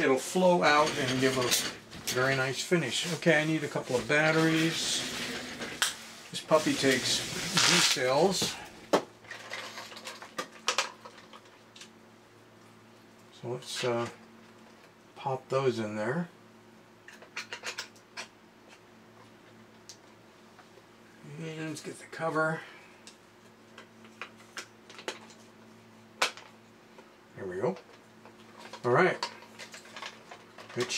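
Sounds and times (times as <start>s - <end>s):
faint steady hum: 0.0s - 30.9s.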